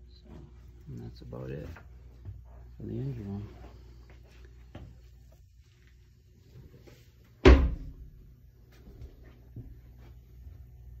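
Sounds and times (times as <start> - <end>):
faint low hum: 0.0 - 11.0
loud thump: 7.4 - 8.0.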